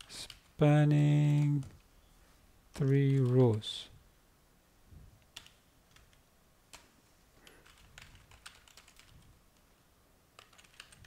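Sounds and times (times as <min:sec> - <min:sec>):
computer keyboard typing: 0:00.0 - 0:00.5, 0:02.8 - 0:03.8, 0:05.3 - 0:06.8, 0:07.4 - 0:09.2, 0:10.4 - 0:11.0.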